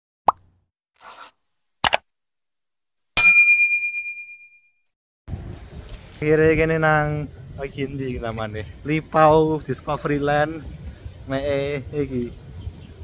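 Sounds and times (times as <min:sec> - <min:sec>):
loud bright ding: 0:03.2 - 0:04.6.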